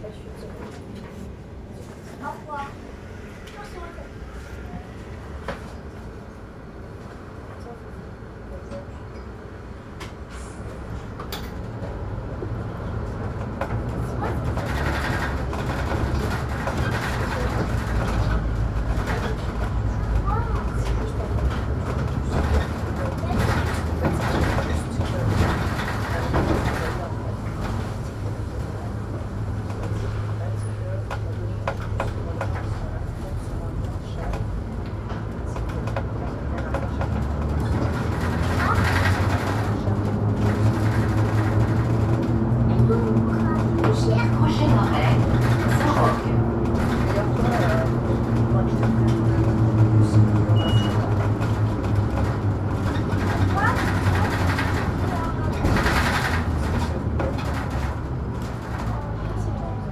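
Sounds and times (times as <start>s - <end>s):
bus body rattling: 0.0s - 59.9s
bus engine hum: 0.0s - 59.9s.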